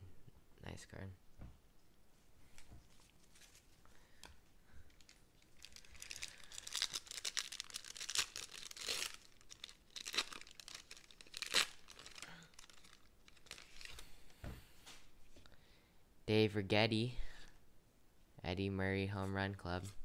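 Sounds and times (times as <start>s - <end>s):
foil wrapper ripping: 4.9s - 14.0s
foil wrapper crinkling: 4.9s - 14.1s.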